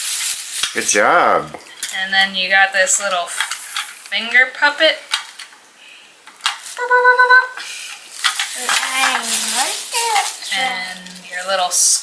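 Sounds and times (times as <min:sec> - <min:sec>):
high-pitched tone: 0:06.8 - 0:07.6
plastic bag rustling: 0:08.1 - 0:11.9.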